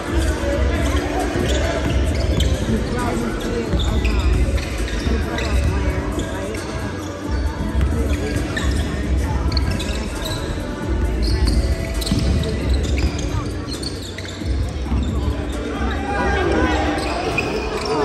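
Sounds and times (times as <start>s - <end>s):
sneakers squeaking: 0.0s - 18.0s
voices of players and spectators: 0.0s - 18.0s.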